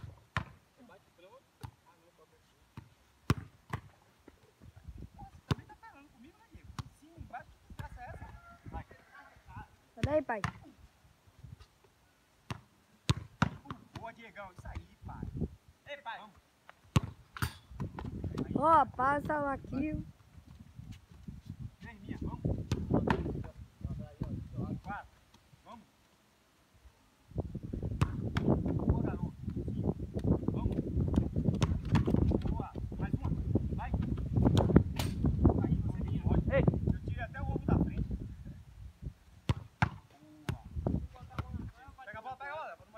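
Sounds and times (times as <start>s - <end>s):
football struck and bouncing on sand: 0.0s - 0.6s, 2.7s - 4.4s, 5.4s - 5.8s, 6.7s - 7.0s, 10.0s - 10.7s, 12.4s - 15.0s, 16.7s - 18.6s, 22.3s - 23.6s, 27.9s - 35.3s, 39.4s - 41.6s.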